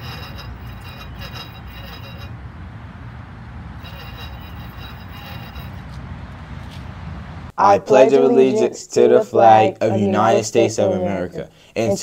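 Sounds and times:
faint high thin tones: 0.0s - 2.3s, 3.8s - 6.0s.

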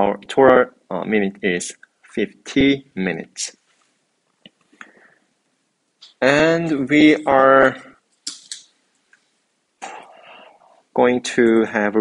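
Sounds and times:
man clearing throat: 9.8s - 10.3s.

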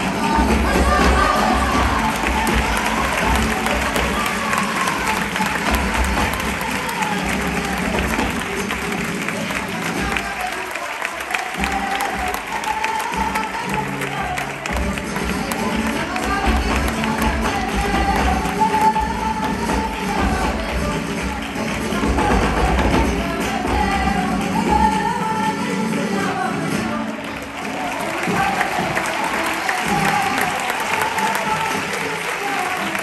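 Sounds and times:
crowd noise: 0.0s - 33.0s
people hand-clapping together: 0.0s - 33.0s
person singing: 0.0s - 33.0s.

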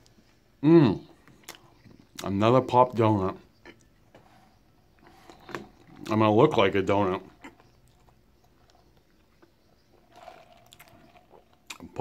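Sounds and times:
mouth clicks: 1.4s - 2.3s.

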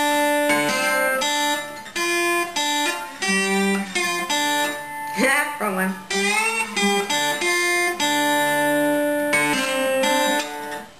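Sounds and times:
lap slide guitar chords: 0.0s - 10.9s.

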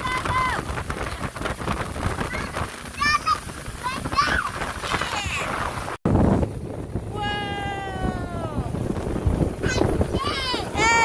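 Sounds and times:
low wind: 0.0s - 11.0s
water noise from boat: 0.0s - 11.0s
child's long wordless call: 7.1s - 8.7s.

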